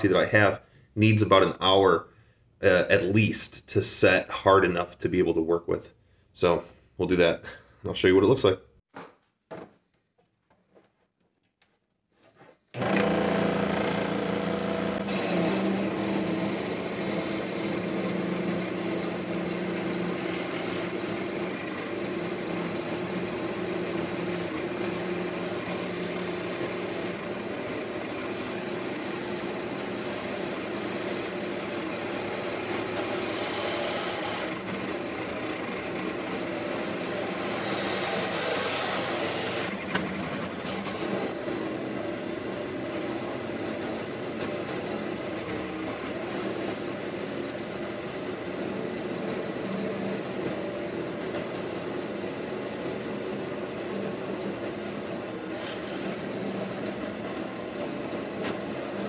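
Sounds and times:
scroll saw cutting: 12.7 - 59.0.

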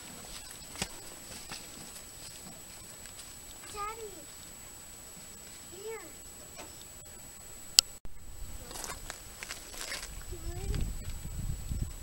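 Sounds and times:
faint steady background noise: 0.0 - 12.0.

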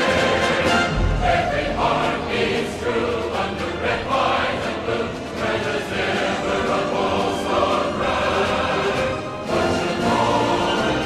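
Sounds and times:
choir singing with music: 0.0 - 11.0.

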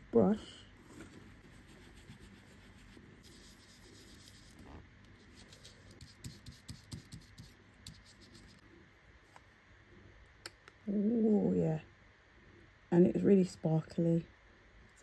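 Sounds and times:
brush scratching on paper: 1.0 - 8.6.

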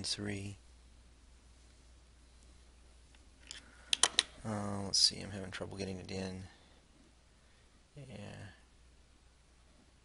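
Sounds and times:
faint low hum: 0.0 - 10.0
wire clicking into breadboard: 3.4 - 4.3.

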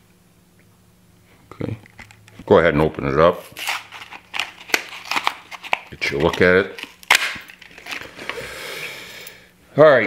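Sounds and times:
plastic blister pack crackling: 3.6 - 8.3.

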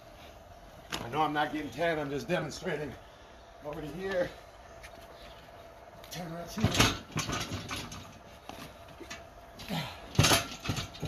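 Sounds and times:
tire landing with thud and clank: 6.5 - 11.0.

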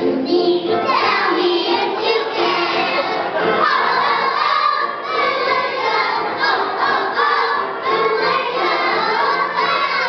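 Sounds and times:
children singing in chorus: 0.0 - 10.0.

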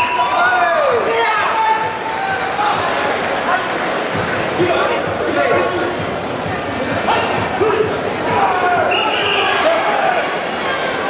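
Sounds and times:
crowd talking in echoing hall: 0.0 - 11.0.

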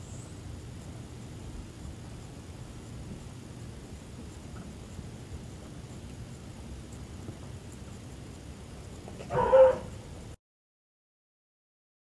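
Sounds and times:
puppy barking: 9.2 - 10.0.

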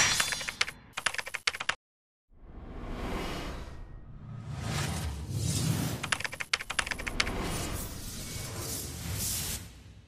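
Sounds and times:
keyboard key clicks: 6.0 - 7.3.

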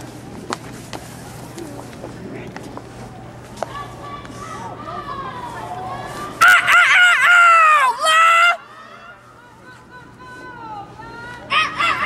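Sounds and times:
soft voices murmuring: 0.0 - 12.0.

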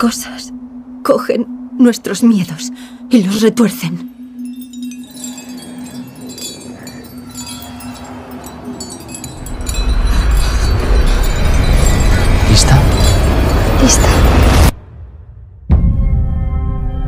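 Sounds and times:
shimmering chime-like high tones: 0.0 - 14.8
deep low rumble: 9.1 - 16.3.

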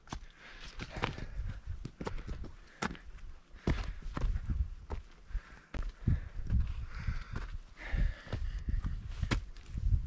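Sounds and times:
footsteps crunching on dirt trail: 0.0 - 9.9.

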